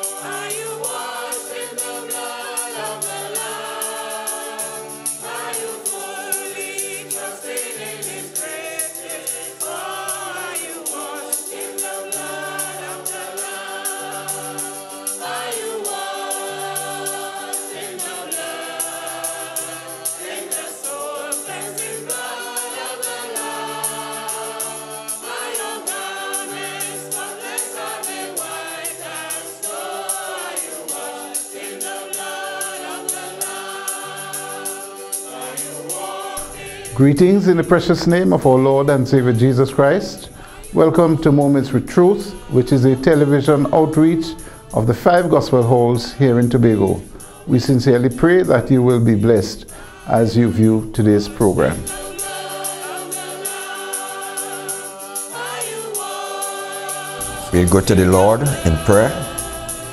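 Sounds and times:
gospel choir singing: 0.0s - 59.9s
instrumental backing: 57.2s - 59.9s
repeating bass line: 57.2s - 59.9s.

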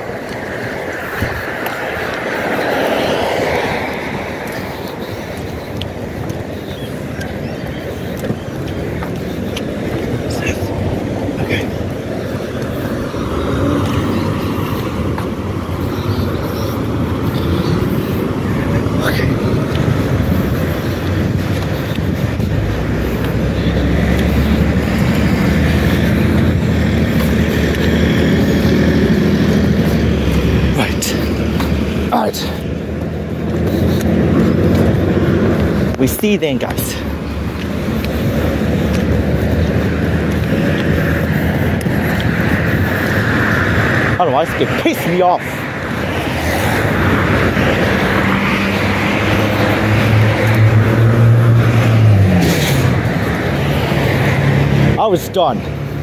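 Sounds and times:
road traffic passing: 0.0s - 56.0s.

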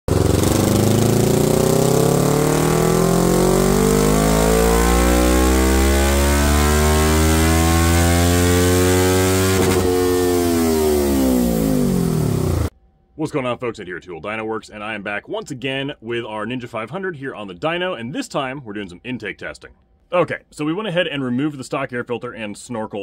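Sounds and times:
motorcycle engine revving: 0.1s - 12.7s.

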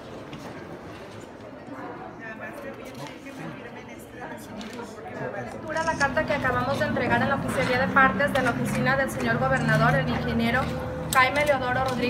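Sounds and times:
mixed voices: 1.7s - 12.0s.

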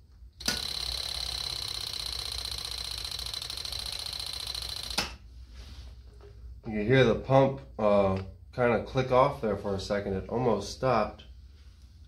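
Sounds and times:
electric fuel pump ticking buzz: 0.4s - 5.2s.

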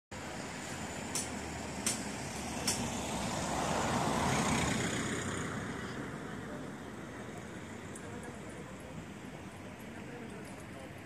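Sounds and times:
outdoor traffic noise: 0.1s - 11.0s
road vehicle passing by: 0.2s - 10.9s.

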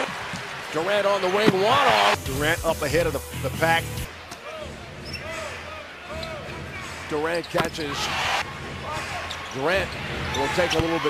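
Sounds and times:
faint shoe squeaks: 5.0s - 5.4s.

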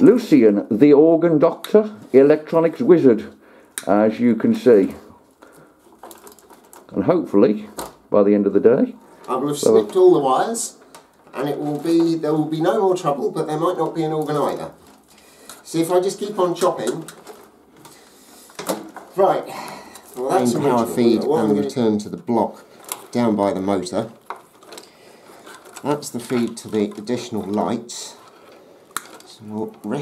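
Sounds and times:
handling rustle: 4.9s - 7.0s, 9.0s - 30.0s.

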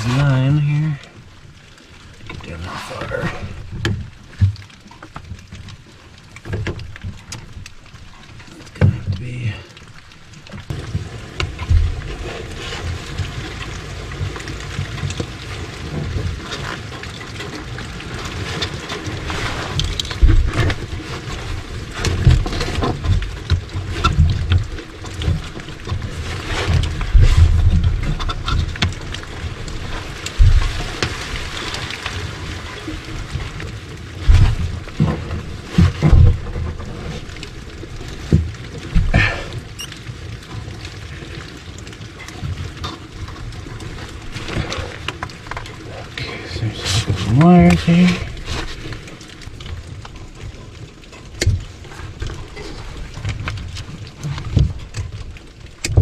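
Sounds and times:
rustling: 10.0s - 56.0s
handling knocks and bumps: 18.5s - 31.5s, 34.2s - 37.2s.

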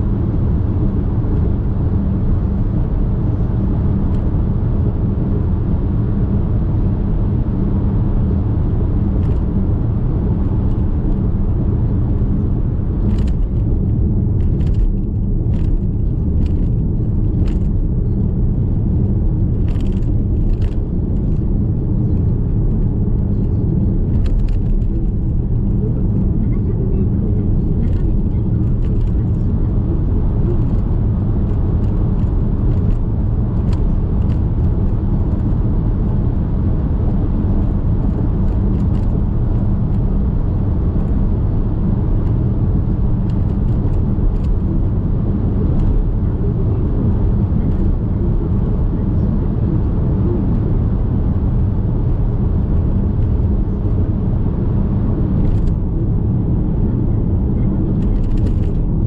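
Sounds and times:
car cabin road rumble: 0.0s - 59.0s.

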